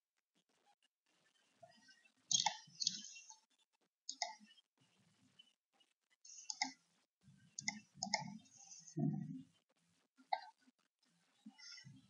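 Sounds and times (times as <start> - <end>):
computer mouse clicks: 2.3 - 3.0, 4.1 - 4.4, 6.4 - 6.8, 7.6 - 8.4, 10.3 - 10.6.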